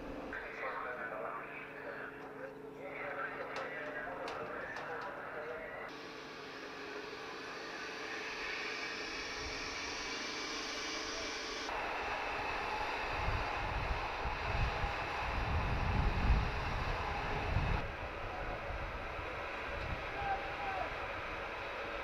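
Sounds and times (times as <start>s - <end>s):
wind buffeting microphone: 12.3s - 22.0s.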